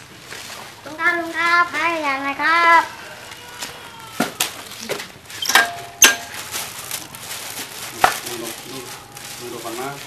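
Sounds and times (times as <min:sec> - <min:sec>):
faint voices: 0:00.8 - 0:05.4, 0:06.3 - 0:10.0
objects knocking and clattering: 0:04.2 - 0:06.5.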